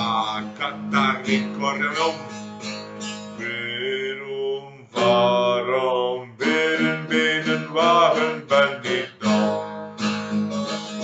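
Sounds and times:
man singing: 0.0s - 2.5s, 3.3s - 9.6s
strummed acoustic guitar: 0.0s - 11.0s.

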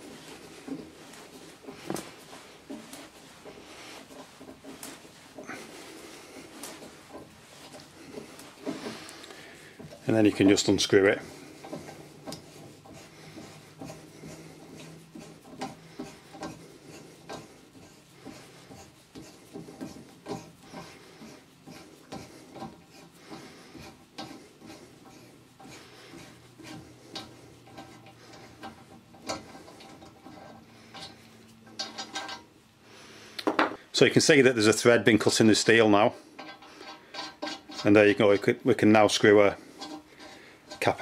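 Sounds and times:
metal-on-metal scraping: 0.0s - 32.7s, 34.6s - 41.0s.

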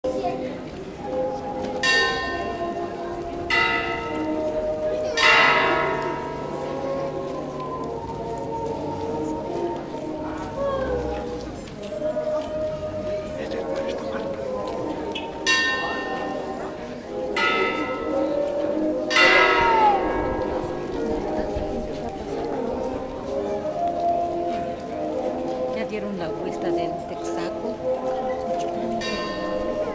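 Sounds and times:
low murmur of crowd: 0.0s - 29.9s
church bell tolling: 1.0s - 7.7s, 15.4s - 22.7s, 26.9s - 29.9s.

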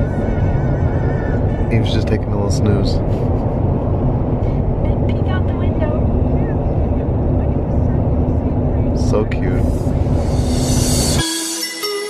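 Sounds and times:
car cabin road noise: 0.0s - 11.2s.

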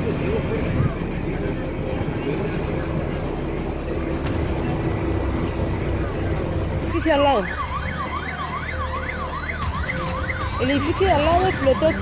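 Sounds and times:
street noise rumble: 0.0s - 12.0s.

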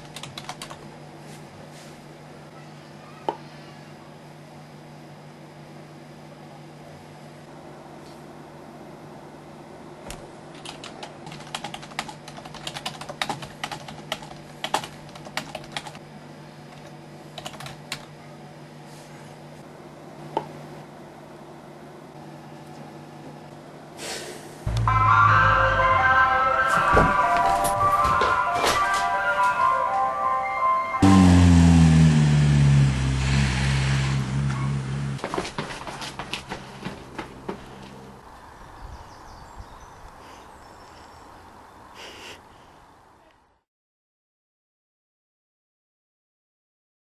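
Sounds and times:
computer keyboard typing: 0.0s - 0.8s, 10.5s - 16.0s, 16.8s - 18.1s
ice cream van chime melody: 24.7s - 31.1s
vehicle engine: 31.0s - 38.3s.

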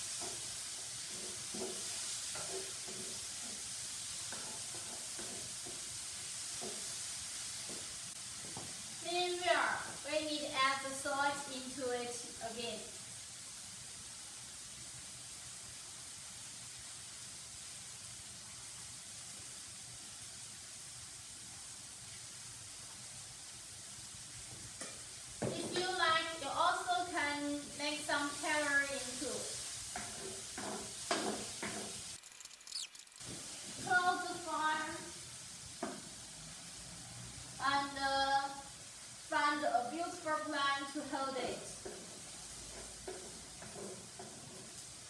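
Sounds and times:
food sizzling in a pan: 0.0s - 45.0s
woman speaking: 9.1s - 12.9s, 25.6s - 29.5s, 33.9s - 35.1s, 39.3s - 41.8s.

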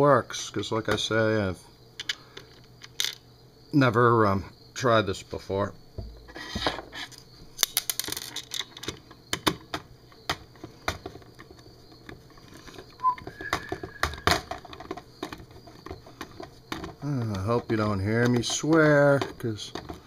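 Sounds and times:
metal scraping on plastic: 6.1s - 7.2s, 10.6s - 20.0s.

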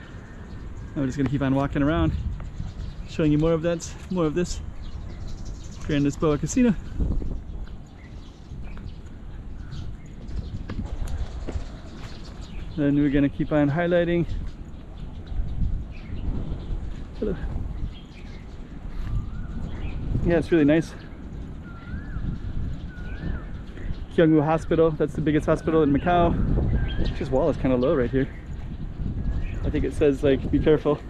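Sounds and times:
wind rumble on microphone: 0.0s - 31.0s
footsteps on stone paving: 1.1s - 12.8s, 18.1s - 19.9s
bird whistling: 21.6s - 23.6s.

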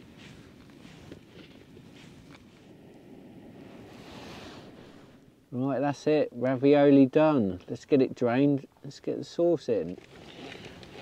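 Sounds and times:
wind on microphone: 0.0s - 5.5s.

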